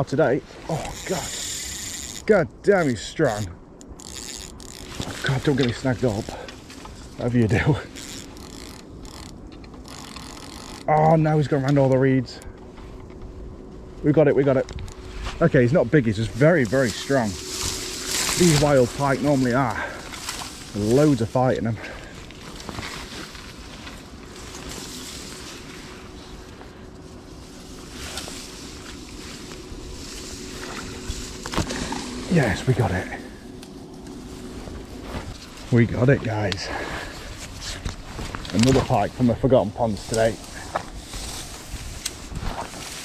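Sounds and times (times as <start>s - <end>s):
dry reeds rustling: 0.0s - 43.0s
fishing reel clicking whirr: 0.8s - 2.3s, 3.8s - 5.1s, 7.7s - 11.0s.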